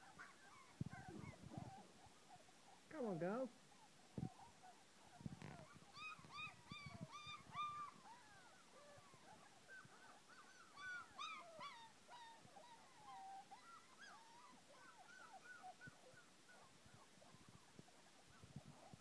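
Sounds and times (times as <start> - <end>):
puppies whining: 0.0 - 19.0.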